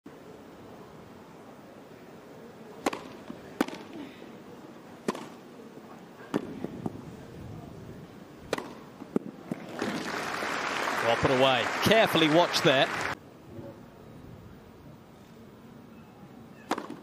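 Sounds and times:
tennis ball struck by rackets: 0:02.8 - 0:03.9, 0:05.0 - 0:05.4, 0:08.5 - 0:09.3, 0:16.6 - 0:17.0.

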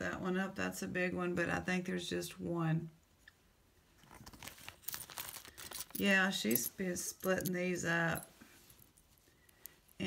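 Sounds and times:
plastic bag crinkling: 0:04.1 - 0:06.7.

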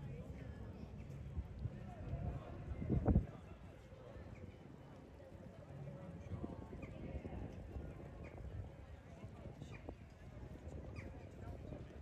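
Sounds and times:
people talking: 0:01.6 - 0:12.0.

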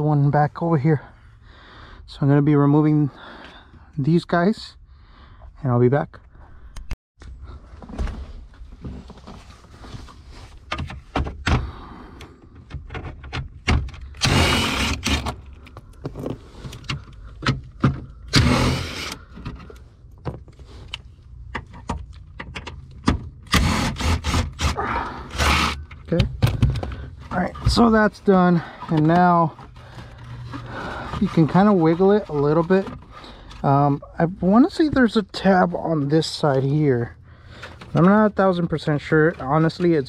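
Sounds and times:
cordless power tool running: 0:14.2 - 0:15.3.

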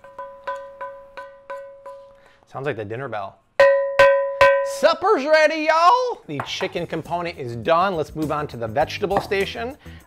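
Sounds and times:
wooden spoon knocking skillet: 0:00.0 - 0:02.4, 0:05.8 - 0:07.0.

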